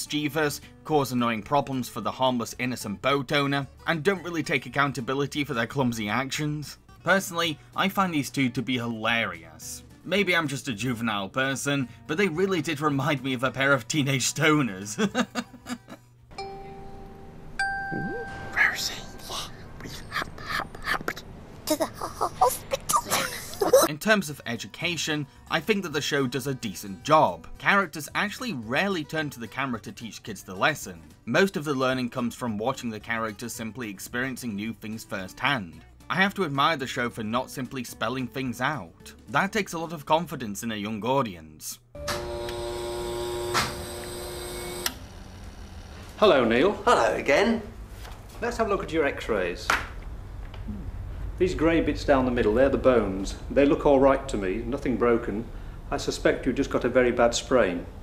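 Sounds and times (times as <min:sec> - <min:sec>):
bell-like chime notes: 0:16.4 - 0:19.3
x-ray machine humming: 0:42.0 - 0:46.7.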